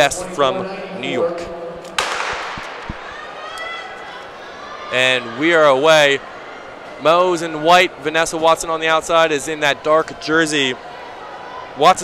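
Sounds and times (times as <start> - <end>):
starter's gun crack echoing: 1.9 - 3.2.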